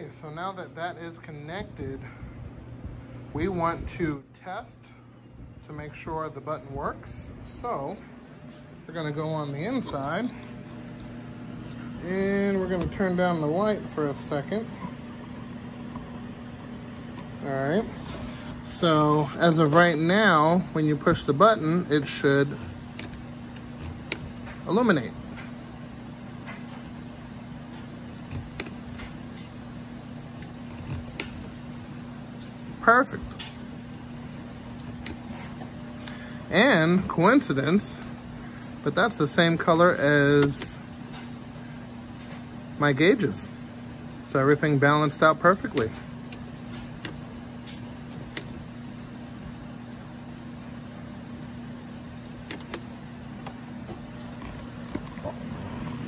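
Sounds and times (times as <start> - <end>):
low electrical hum: 0.0 - 56.0.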